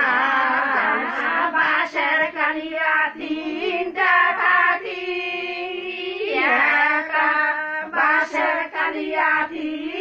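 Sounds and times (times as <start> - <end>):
high voices singing: 0.0 - 10.0.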